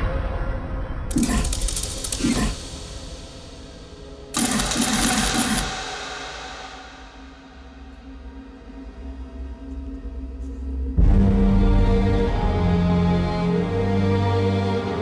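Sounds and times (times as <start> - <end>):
rapid rattling with wavering tones: 1.1 - 7.6
loud hit: 1.1 - 8.0.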